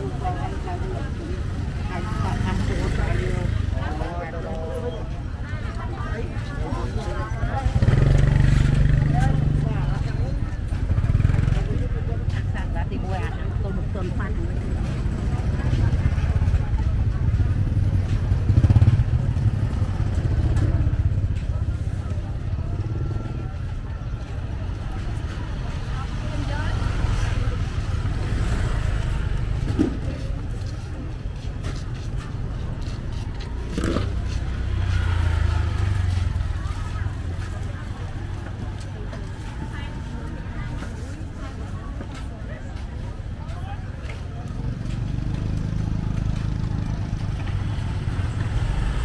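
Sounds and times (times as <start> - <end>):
people talking: 0.0 - 49.0
scooters riding past: 0.0 - 49.0.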